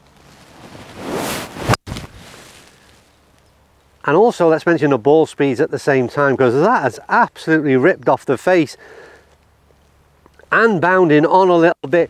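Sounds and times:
golf club swing whoosh: 0:00.6 - 0:02.8.

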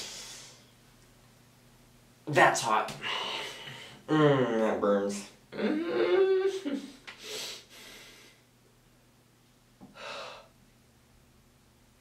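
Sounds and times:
man gasping: 0:03.0 - 0:04.4, 0:09.8 - 0:10.5.

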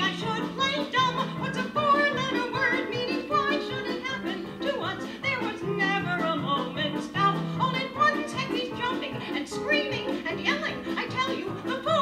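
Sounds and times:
instrumental accompaniment: 0:00.0 - 0:12.0
woman singing: 0:00.0 - 0:12.0.

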